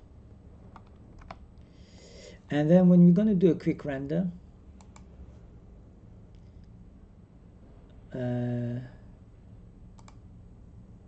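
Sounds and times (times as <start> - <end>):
faint low hum: 0.0 - 11.0
keyboard and mouse clicks: 0.7 - 1.4, 4.8 - 5.1, 10.0 - 10.2.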